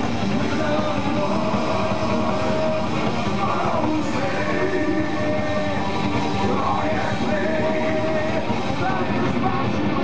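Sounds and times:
bass: 0.0s - 10.0s
distorted electric guitars: 0.0s - 10.0s
drums: 0.0s - 10.0s.

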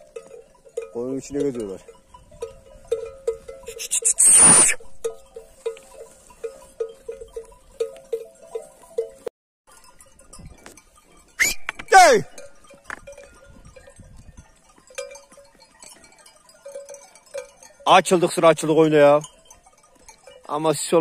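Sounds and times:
sheep bells clinking: 0.0s - 21.0s.

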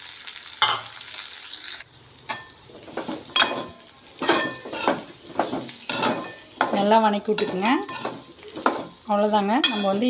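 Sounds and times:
food sizzling in a pan: 0.0s - 10.0s
spatula scraping frying pan: 2.3s - 10.0s.

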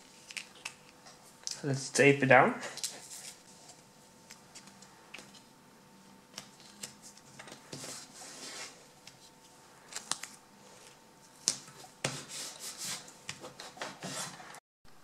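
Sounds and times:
tape rubbing on plastic: 11.6s - 14.6s.

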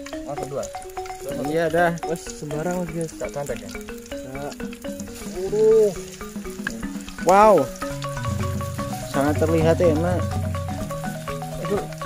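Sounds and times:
background music: 0.0s - 12.0s
batter frying in oil: 0.0s - 12.0s
oil popping: 0.0s - 12.0s
person's voice: 9.1s - 10.3s.

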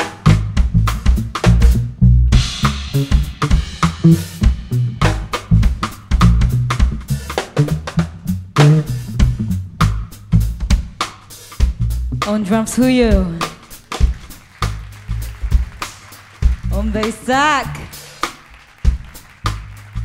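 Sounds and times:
bass line: 0.0s - 11.0s, 11.6s - 13.6s, 14.6s - 15.8s, 16.4s - 18.2s, 19.0s - 20.0s
drum kit busy beat: 0.0s - 20.0s.

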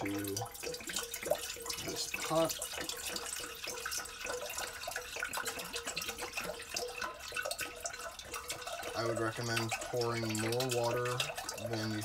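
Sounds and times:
water pouring into a metal pot: 0.0s - 12.0s.

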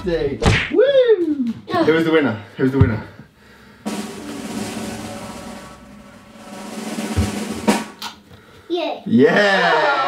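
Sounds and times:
sharp drum hit: 3.8s - 8.0s
snare drum roll: 3.8s - 8.0s.

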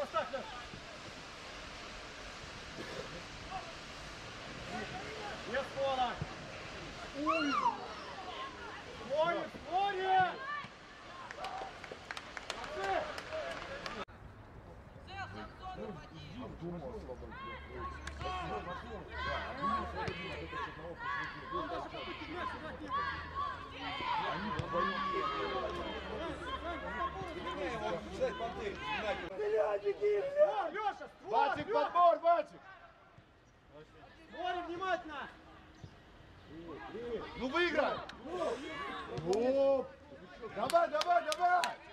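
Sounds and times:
people shouting and calling: 3.3s - 11.8s, 17.3s - 33.0s.

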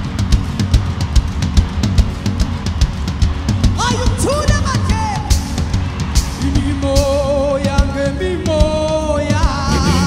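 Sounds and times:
bass drum beats: 0.0s - 10.0s
bass line: 0.0s - 10.0s
gospel band playing: 0.0s - 10.0s.

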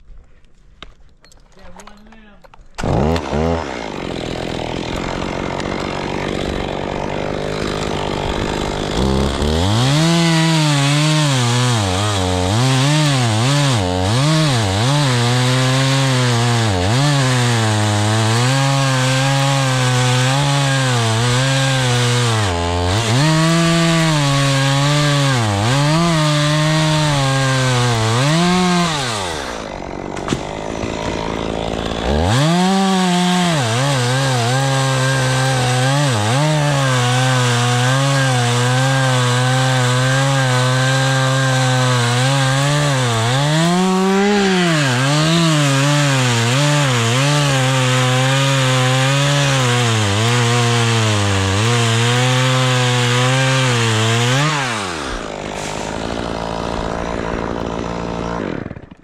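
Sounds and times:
chainsaw cutting wood: 1.8s - 59.0s.

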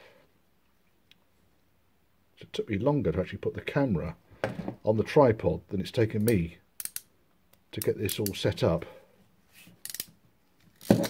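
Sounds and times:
ratchet crimp tool clicking: 6.8s - 7.1s, 9.8s - 10.1s.

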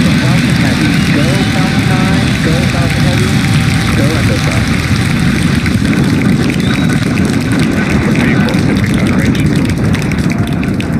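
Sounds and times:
rocket engines rumbling: 0.0s - 10.9s.

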